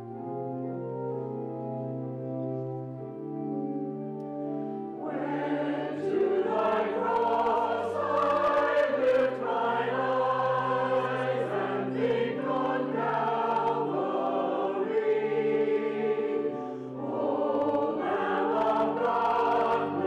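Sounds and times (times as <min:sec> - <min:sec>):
organ holding low notes: 0:00.0 - 0:20.0
choir singing a hymn: 0:04.9 - 0:20.0.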